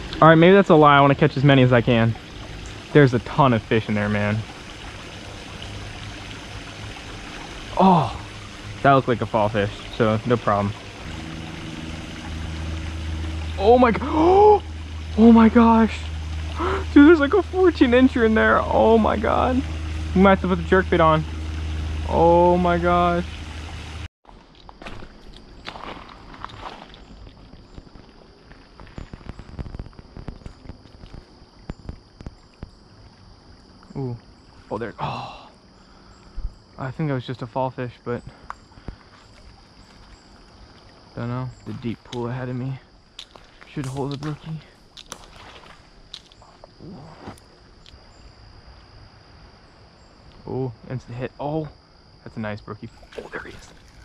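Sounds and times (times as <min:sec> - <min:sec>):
insects chirring: 0:00.0 - 0:54.0
footsteps on dirt and gravel: 0:24.2 - 0:31.4
twigs crackling: 0:43.2 - 0:46.6.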